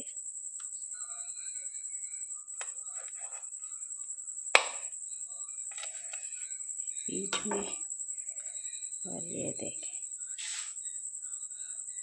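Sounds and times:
steady high-pitched whine: 0.0 - 12.0.

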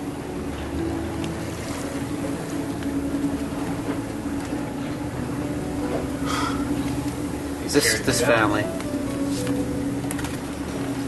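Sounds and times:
boat engine droning: 0.0 - 11.0.

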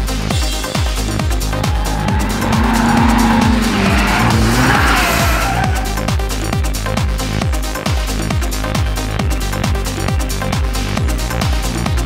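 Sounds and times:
race car engine: 1.1 - 7.0
tyres squealing: 1.4 - 6.2.

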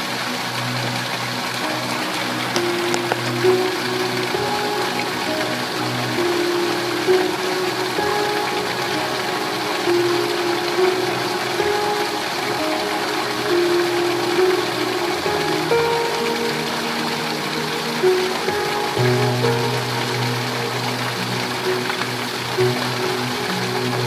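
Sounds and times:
heavy rain hissing: 0.0 - 24.0
soft music of held notes: 0.0 - 24.0.

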